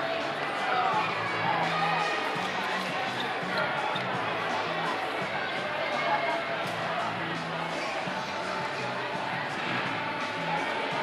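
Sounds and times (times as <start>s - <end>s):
background music with bass line: 0.0s - 6.0s
voices talking: 0.0s - 11.0s.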